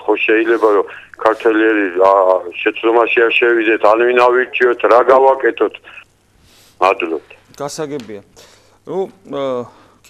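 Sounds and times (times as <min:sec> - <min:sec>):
person talking: 0:00.0 - 0:06.0, 0:06.8 - 0:08.3.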